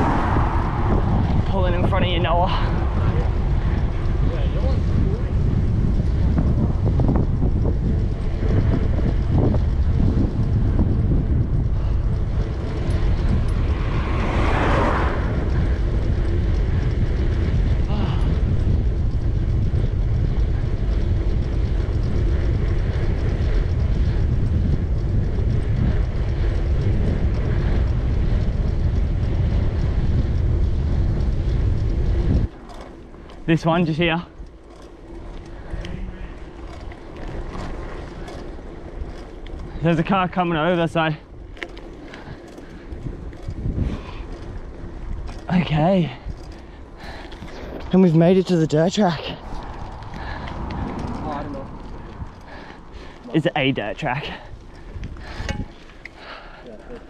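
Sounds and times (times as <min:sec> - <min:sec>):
wind buffeting microphone: 0:00.0 - 0:57.0.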